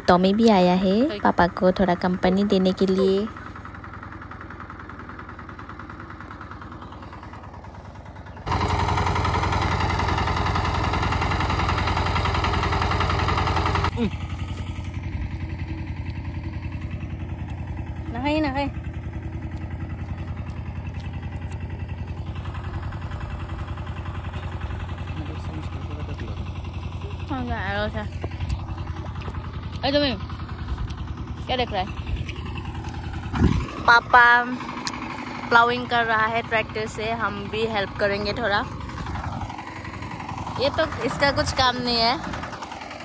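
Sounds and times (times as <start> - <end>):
tractor engine droning: 0.0 - 43.0.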